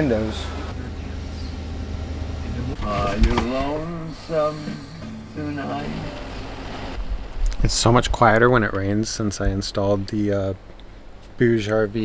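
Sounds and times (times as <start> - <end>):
steady low hum: 0.0 - 12.0
man speaking: 2.4 - 6.4, 7.6 - 10.6, 11.4 - 12.0.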